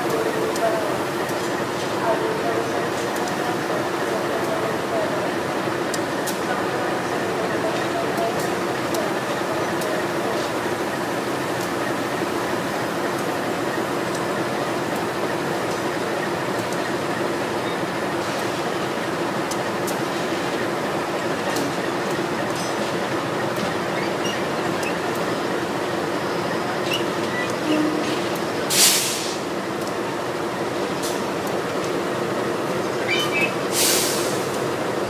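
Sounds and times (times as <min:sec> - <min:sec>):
locomotive engines humming: 0:00.0 - 0:35.0.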